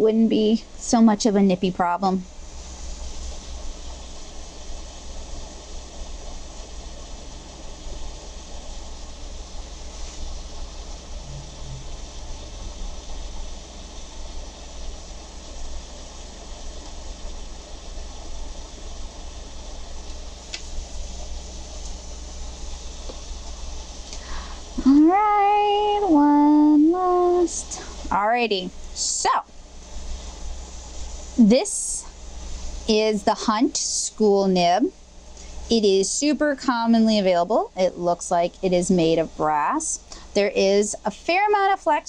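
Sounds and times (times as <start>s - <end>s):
background hiss: 0.0s - 42.0s
low hum: 7.2s - 30.1s.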